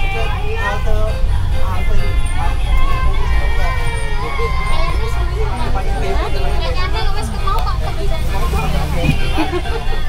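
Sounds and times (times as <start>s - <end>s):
bus engine and road rumble: 0.0s - 10.0s
music: 0.0s - 10.0s
voices: 0.0s - 10.0s.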